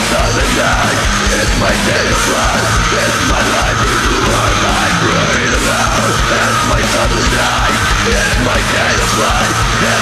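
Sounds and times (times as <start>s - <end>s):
loud industrial metal music: 0.0s - 10.0s.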